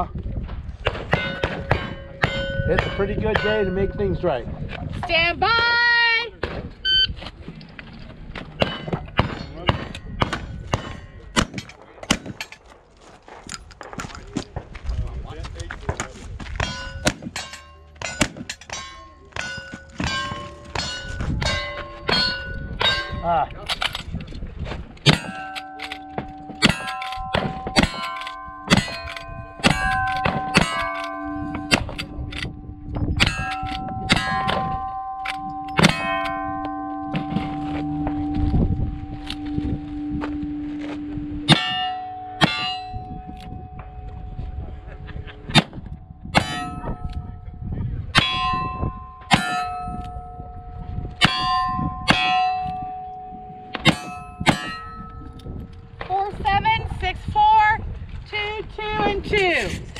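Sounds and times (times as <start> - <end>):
steel plate clanging: 0.9 - 4.2, 16.6 - 24.2, 25.0 - 56.6.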